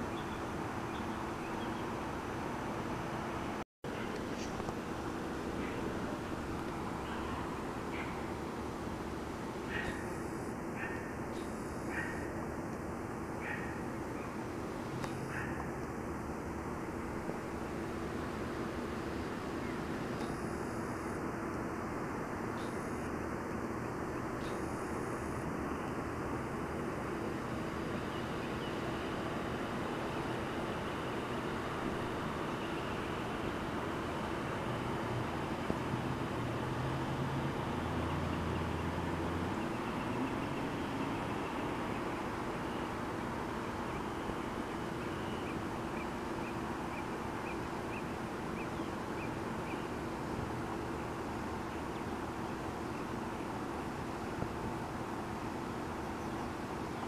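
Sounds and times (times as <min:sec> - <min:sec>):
outdoor background hiss: 0:00.0 - 0:57.0.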